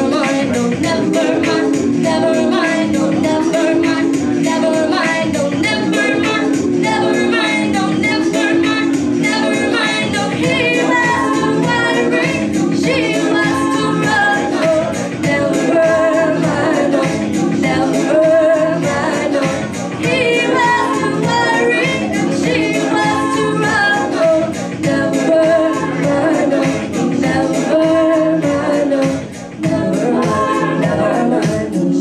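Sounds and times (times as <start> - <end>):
electronic keyboard chords: 0.0 - 32.0
woman singing: 0.0 - 32.0.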